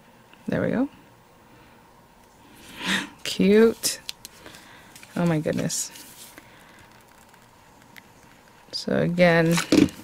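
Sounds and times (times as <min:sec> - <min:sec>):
soft handling sounds: 0:03.4 - 0:08.7.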